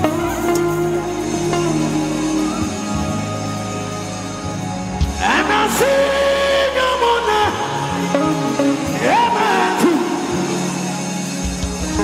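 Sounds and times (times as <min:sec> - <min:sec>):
man singing a long note: 0:00.0 - 0:03.7, 0:05.1 - 0:11.0
bass line: 0:00.0 - 0:12.0.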